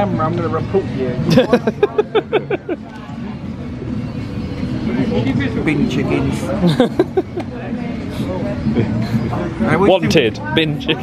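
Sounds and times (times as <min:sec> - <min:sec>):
faint background voices talking: 0:00.0 - 0:11.0.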